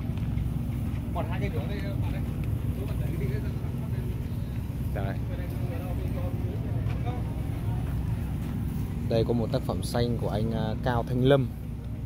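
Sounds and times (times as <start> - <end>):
steady low rumble: 0.0 - 12.0
people talking: 0.8 - 11.6.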